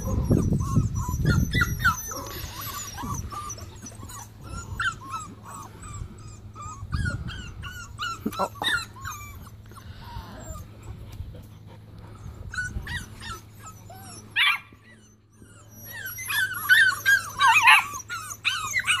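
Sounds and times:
puppies whining and yipping: 0:00.0 - 0:19.0.

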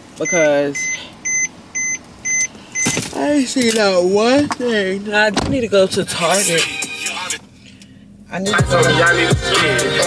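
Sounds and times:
car warning chime beeping: 0:00.2 - 0:05.3.

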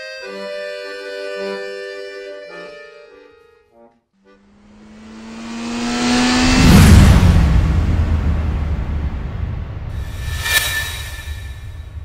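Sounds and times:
race car engine passing: 0:04.4 - 0:09.1.

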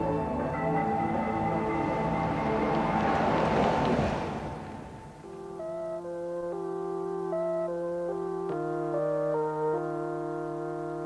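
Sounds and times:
car passing close by: 0:00.0 - 0:06.1
background music of held notes: 0:00.0 - 0:11.0.

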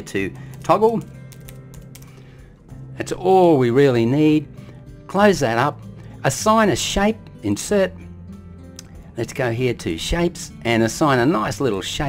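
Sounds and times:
computer keyboard typing: 0:00.5 - 0:02.2.

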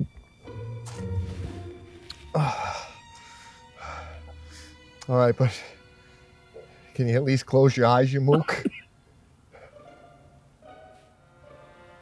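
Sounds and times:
soft background music: 0:00.0 - 0:08.7, 0:09.7 - 0:12.0
man gasping breath: 0:02.2 - 0:04.8.

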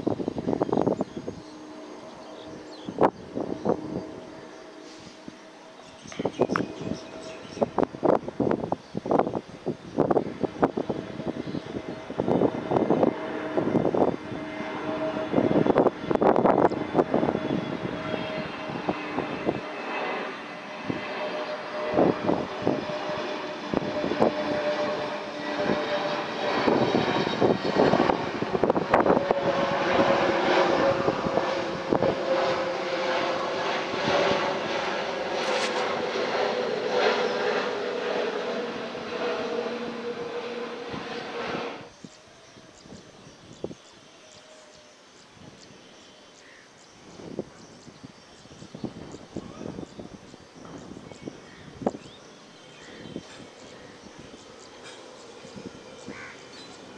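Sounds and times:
jet airliner roar passing overhead: 0:00.0 - 0:56.9.

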